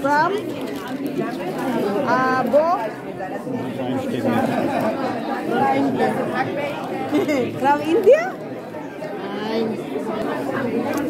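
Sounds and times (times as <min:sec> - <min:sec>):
people talking at once: 0:00.0 - 0:11.0.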